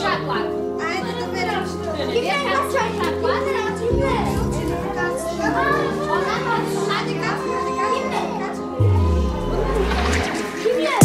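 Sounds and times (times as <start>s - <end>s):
background music: 0.0s - 11.0s
children's voices and chatter: 0.0s - 11.0s
deep sliding bass note: 8.8s - 10.3s.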